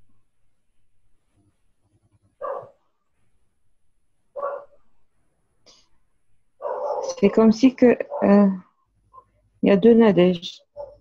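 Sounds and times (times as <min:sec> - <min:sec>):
dog barking: 0:02.4 - 0:02.8, 0:04.4 - 0:04.8, 0:06.6 - 0:07.2, 0:08.0 - 0:08.4, 0:10.7 - 0:11.0.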